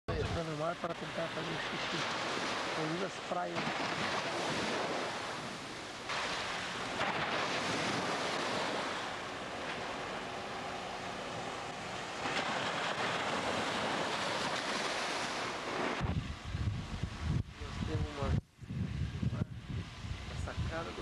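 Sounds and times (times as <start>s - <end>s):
sea surf washing: 0.1s - 21.0s.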